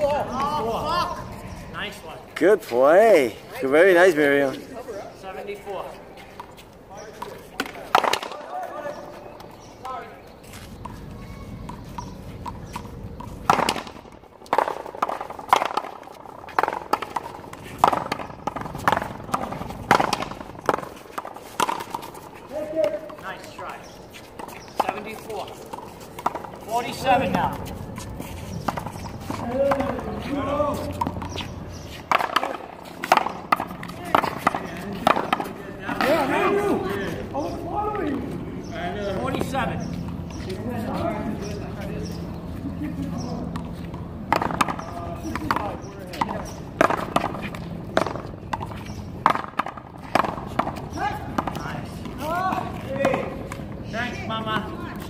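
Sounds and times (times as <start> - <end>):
paddles hitting rubber ball: 6.4 - 9.7, 10.8 - 36.8, 43.4 - 53.9.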